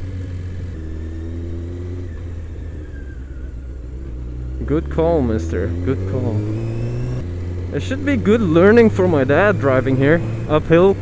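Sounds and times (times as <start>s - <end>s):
motorcycle engine running at low revs: 0.0s - 11.0s.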